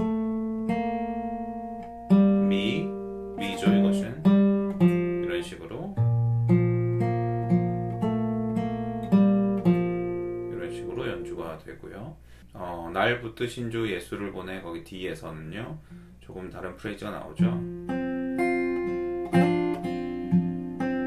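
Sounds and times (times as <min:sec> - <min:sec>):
fingerpicked acoustic guitar: 0:00.0 - 0:12.5, 0:15.7 - 0:16.2, 0:16.9 - 0:21.0.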